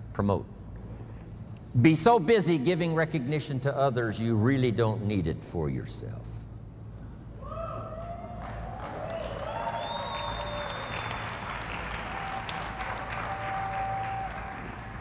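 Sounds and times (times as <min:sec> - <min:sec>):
large audience applauding: 0:08.2 - 0:15.0.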